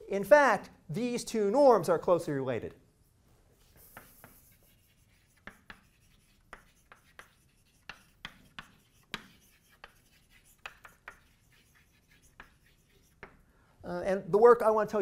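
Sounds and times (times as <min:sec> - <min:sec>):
chalk tapping and scratching: 0:03.6 - 0:13.4.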